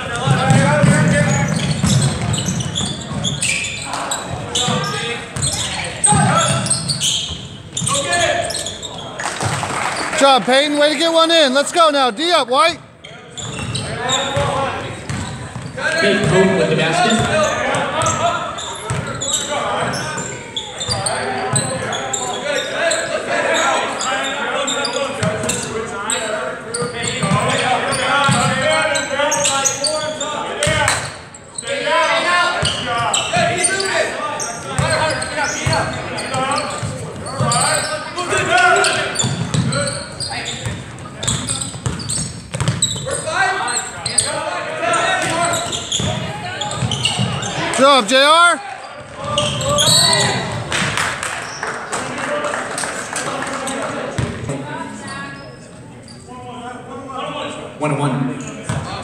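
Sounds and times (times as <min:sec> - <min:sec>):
basketball bouncing on hardwood: 0:41.8 - 0:42.8.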